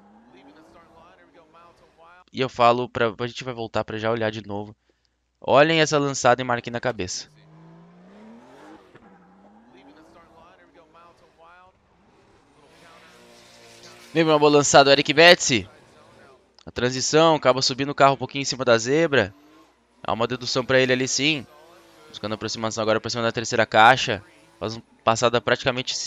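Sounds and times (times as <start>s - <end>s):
car engine revving: 0.0s - 2.1s, 6.2s - 26.0s
faint voices: 9.6s - 16.5s.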